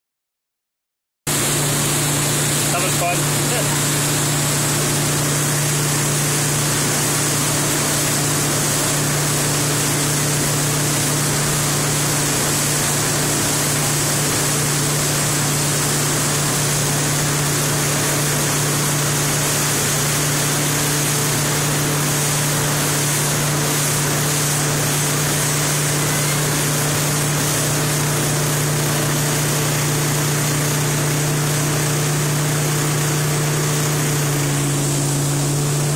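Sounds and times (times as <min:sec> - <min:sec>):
motorboat engine running: 0:01.3 - 0:35.9
wake spray rushing: 0:01.3 - 0:35.9.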